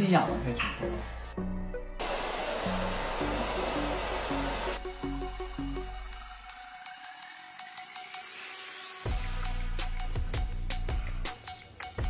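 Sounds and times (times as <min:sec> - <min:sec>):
hair dryer blowing: 0:02.0 - 0:04.9
background music with stepped melody: 0:03.0 - 0:12.0.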